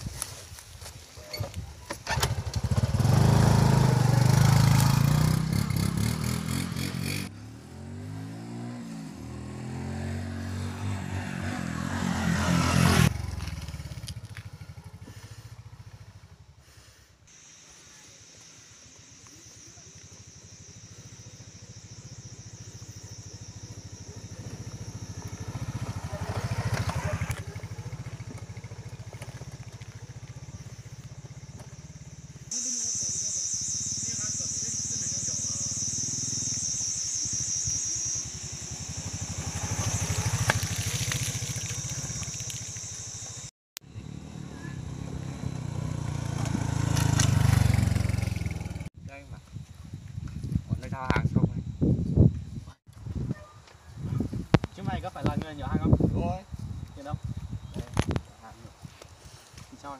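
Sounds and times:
high-pitched buzz: 32.5s - 46.0s.

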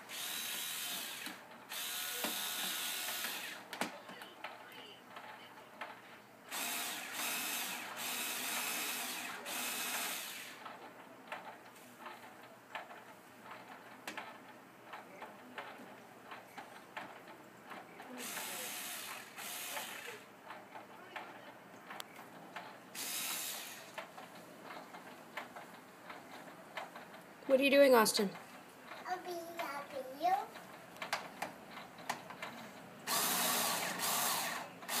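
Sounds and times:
toy power tool clicking and ratcheting: 0.1s - 3.7s, 6.5s - 10.7s, 18.2s - 20.3s, 23.0s - 24.1s, 32.4s - 35.0s.

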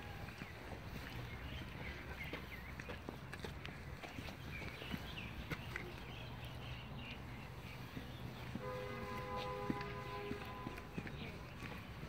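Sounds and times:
footsteps on a path: 0.0s - 12.0s.

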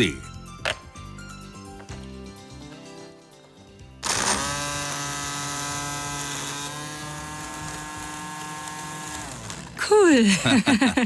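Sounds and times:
electric string trimmer whining: 4.0s - 9.9s.

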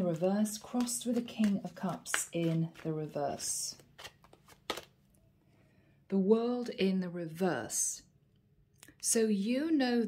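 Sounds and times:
cards flicking: 0.0s - 2.9s, 3.7s - 4.9s.

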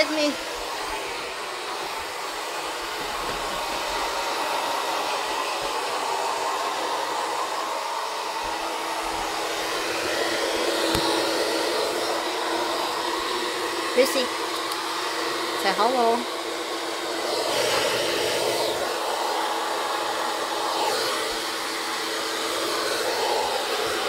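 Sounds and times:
hair dryer running: 0.0s - 24.0s.

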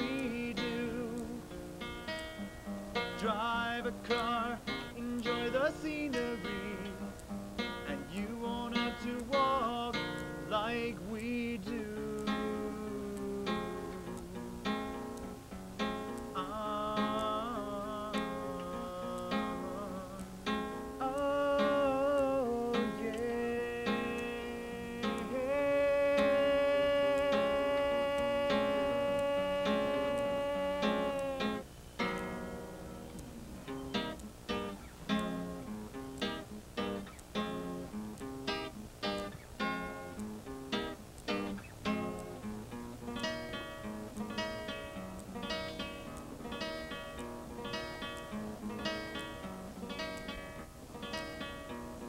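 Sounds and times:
man singing: 0.0s - 1.6s, 3.0s - 7.2s, 7.8s - 14.9s, 16.1s - 20.4s, 21.0s - 31.7s
strummed acoustic guitar: 0.0s - 52.0s.

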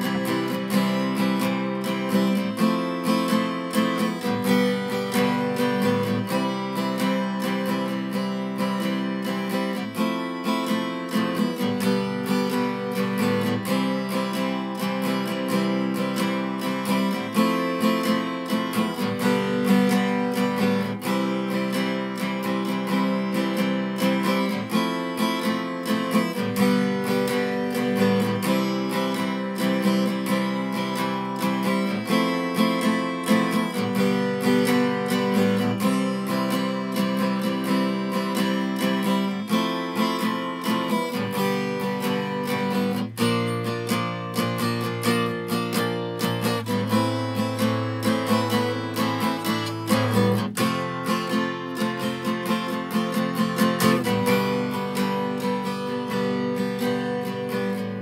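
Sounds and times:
acoustic guitar strumming: 0.0s - 58.0s.

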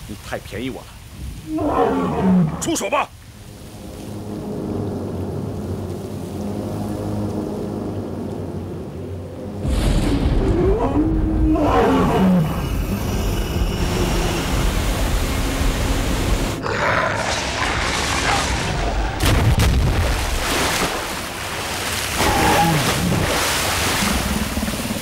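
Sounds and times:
dramatic film score drone: 2.7s - 19.4s
deep rumble: 3.7s - 16.6s
drawn-out roar: 10.3s - 14.6s.

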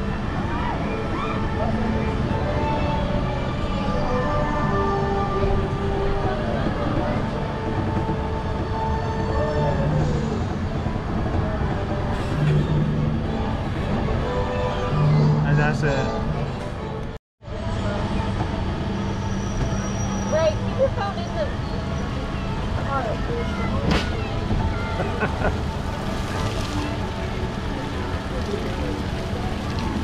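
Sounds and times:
faint voices: 0.0s - 30.0s
monorail car rumble and hum: 0.0s - 30.0s.

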